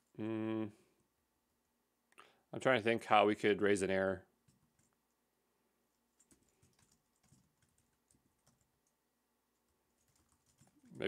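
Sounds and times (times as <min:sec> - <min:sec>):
faint keyboard typing: 0:04.4 - 0:05.2, 0:05.9 - 0:11.0.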